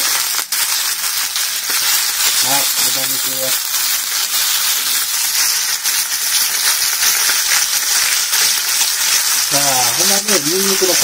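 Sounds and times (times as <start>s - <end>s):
pork sizzling in hot oil: 0.0s - 11.0s.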